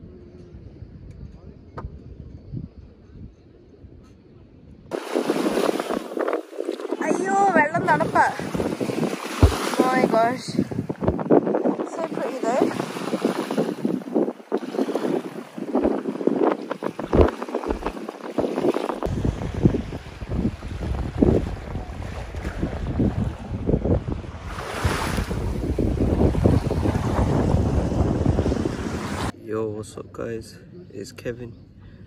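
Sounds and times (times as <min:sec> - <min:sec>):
wind buffeting microphone: 0:00.0 - 0:29.4
small waves lapping: 0:04.9 - 0:29.3.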